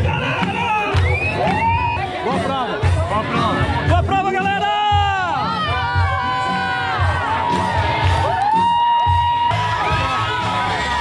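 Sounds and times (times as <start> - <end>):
crowd cheering and whooping: 0.0 - 2.2, 5.3 - 11.0
music with bass beat: 0.0 - 11.0.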